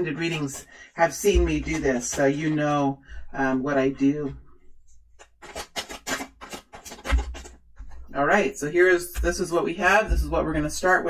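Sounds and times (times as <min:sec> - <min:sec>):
cards scraping and clicking: 0:00.0 - 0:02.8, 0:05.0 - 0:08.2.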